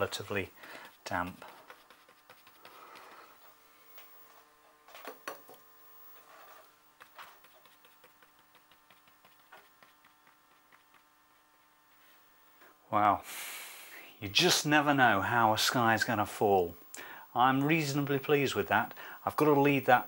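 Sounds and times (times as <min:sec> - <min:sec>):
brush scratching on damp paper: 0:00.0 - 0:03.4, 0:06.2 - 0:11.7
faint steady hum: 0:00.0 - 0:20.0.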